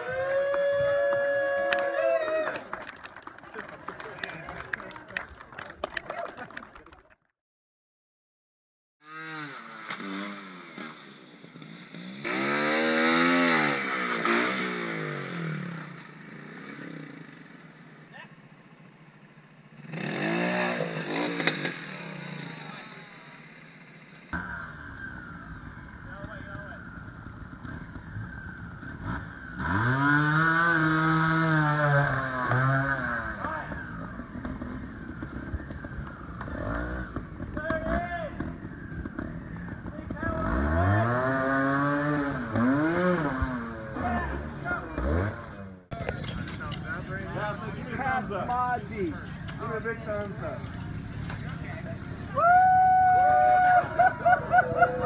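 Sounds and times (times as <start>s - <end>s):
motorcycle engine revving: 9.0s - 55.0s.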